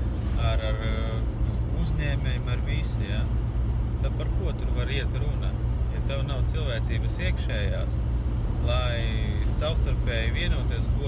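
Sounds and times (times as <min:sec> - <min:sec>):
car driving heard from cabin: 0:00.0 - 0:11.0.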